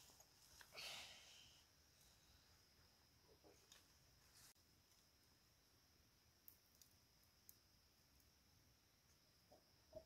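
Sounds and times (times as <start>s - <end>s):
faint high hiss: 0.0s - 10.0s.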